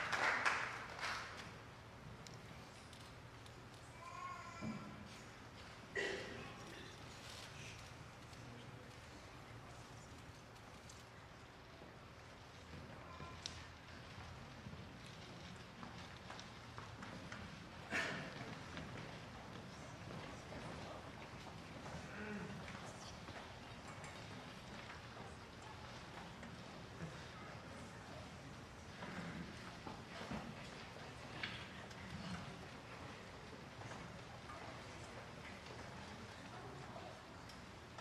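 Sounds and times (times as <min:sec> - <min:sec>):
quiet talk: 0:02.0 - 0:38.0
faint footsteps and shoe clicks: 0:06.6 - 0:38.0.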